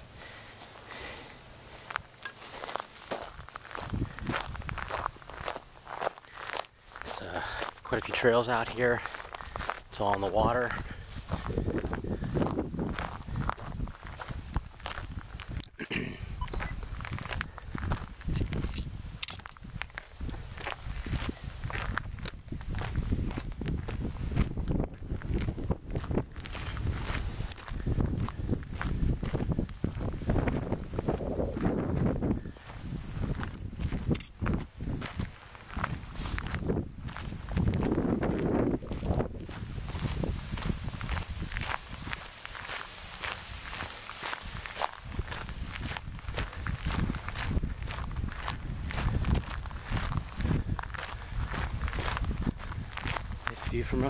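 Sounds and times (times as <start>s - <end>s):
footsteps on outdoor trail: 0.0s - 54.0s.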